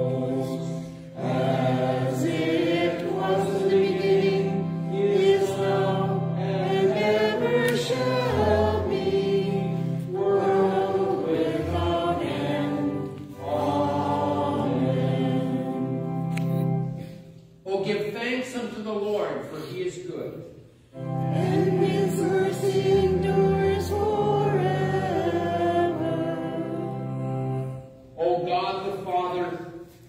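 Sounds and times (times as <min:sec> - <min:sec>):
congregation singing a hymn: 0:00.0 - 0:17.3, 0:20.9 - 0:30.0
keyboard accompaniment: 0:00.0 - 0:17.6, 0:20.8 - 0:29.4.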